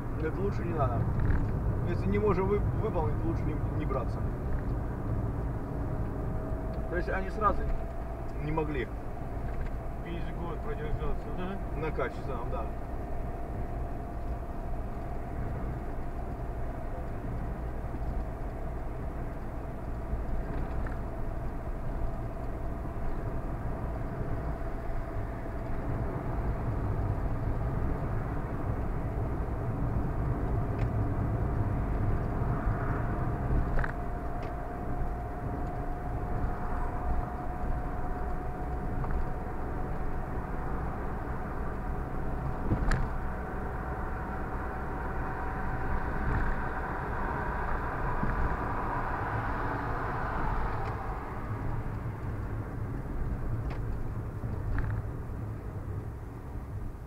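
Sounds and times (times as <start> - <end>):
road and engine rumble: 0.0 - 57.0
faint rising whine: 1.9 - 53.6.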